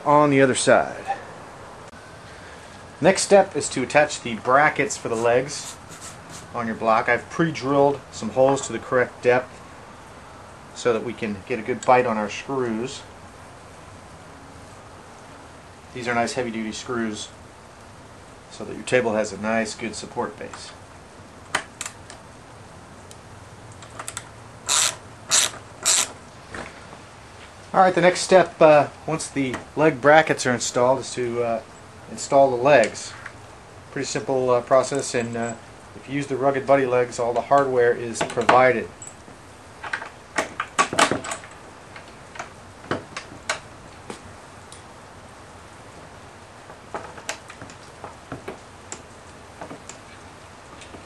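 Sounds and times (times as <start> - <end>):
ratchet driver clicking: 24.0 - 26.2.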